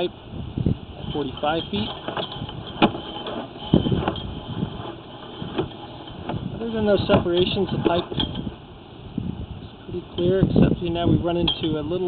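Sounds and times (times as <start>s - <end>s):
push cable rubbing and clattering: 1.0s - 8.8s
sharp knocks: 1.9s - 6.4s.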